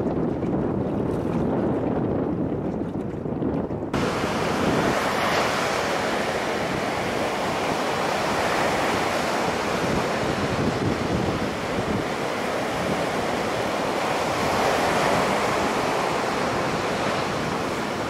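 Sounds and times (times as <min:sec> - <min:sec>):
waves breaking against rocks: 0:04.0 - 0:18.0.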